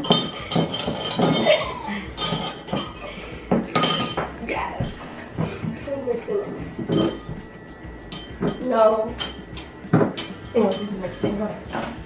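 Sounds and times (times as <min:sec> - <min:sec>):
metal spoon clinking against glass: 0:00.0 - 0:03.0, 0:03.7 - 0:04.3, 0:06.9 - 0:07.4, 0:08.1 - 0:11.8.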